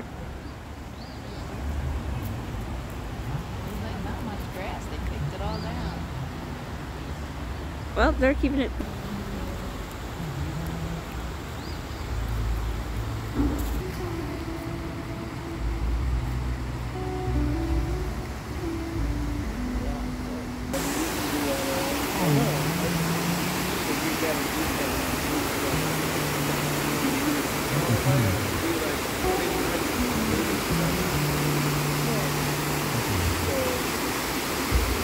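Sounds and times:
music with held notes: 0:08.4 - 0:35.0
river rushing over rapids: 0:08.8 - 0:35.0.

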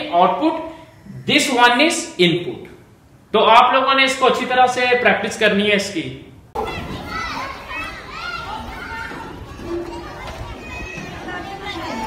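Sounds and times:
background hum: 0:00.0 - 0:12.0
children calling: 0:06.6 - 0:12.0.

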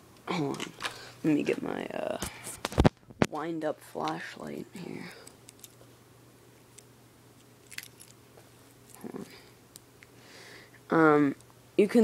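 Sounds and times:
objects clicking when handled: 0:05.2 - 0:05.8, 0:06.7 - 0:08.2.

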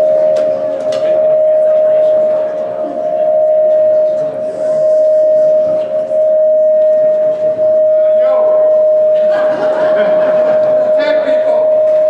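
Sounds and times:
faint voices: 0:00.0 - 0:12.0
microphone feedback tone: 0:00.0 - 0:12.0.

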